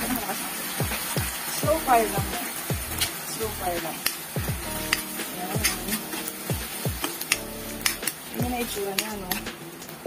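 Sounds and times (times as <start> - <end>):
food sizzling in a wok: 0.0 - 10.0
background music with bass beat: 0.8 - 9.5
metal spatula clicking on pan: 3.9 - 4.2, 4.8 - 6.4, 7.0 - 9.5.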